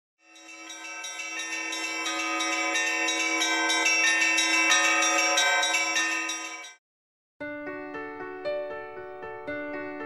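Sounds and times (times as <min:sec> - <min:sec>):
church bells ringing: 0:00.3 - 0:06.8.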